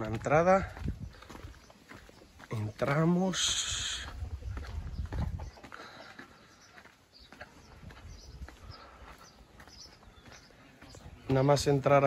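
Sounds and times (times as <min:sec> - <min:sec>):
footsteps on dirt and stone: 0:00.0 - 0:12.0.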